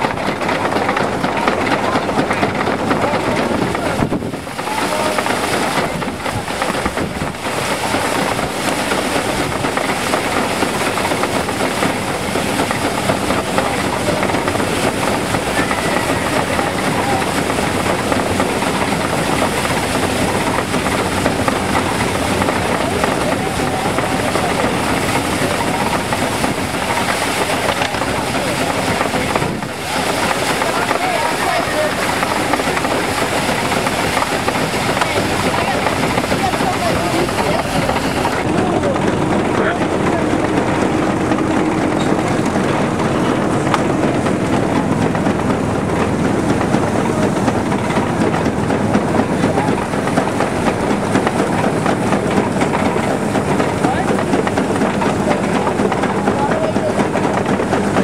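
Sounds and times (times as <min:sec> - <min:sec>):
machine clatter and rattle: 0:00.0 - 0:58.0.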